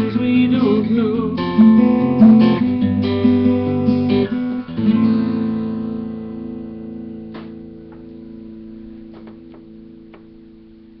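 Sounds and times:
acoustic guitar chord ringing: 0.1s - 10.6s.

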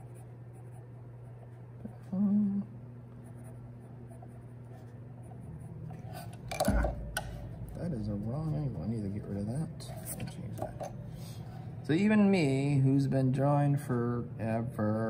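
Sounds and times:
steady low hum: 0.0s - 15.0s
person humming: 1.8s - 2.8s.

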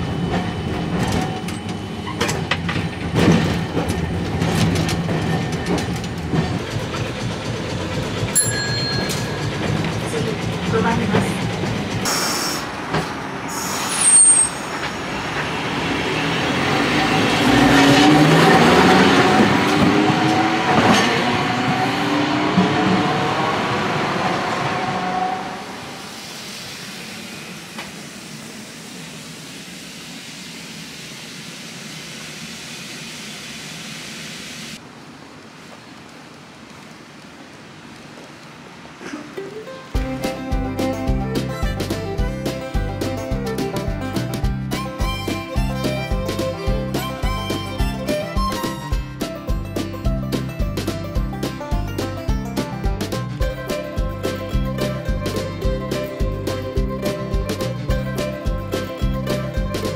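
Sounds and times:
street noise: 0.0s - 32.8s, 33.6s - 59.9s
streetcar running hum: 0.0s - 34.8s, 38.6s - 59.9s
tram passing: 0.0s - 35.1s, 36.4s - 59.9s.

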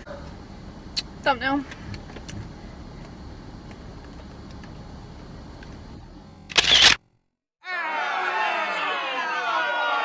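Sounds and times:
phone camera shutter click: 6.5s - 7.0s.

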